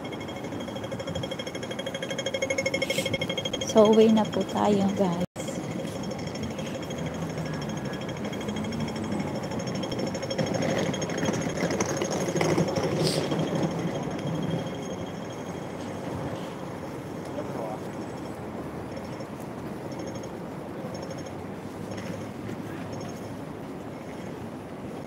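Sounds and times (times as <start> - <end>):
rapid mechanical ticking: 0.0 - 16.1, 18.0 - 22.3
passing traffic: 0.0 - 25.0
voices of passersby: 2.8 - 25.0.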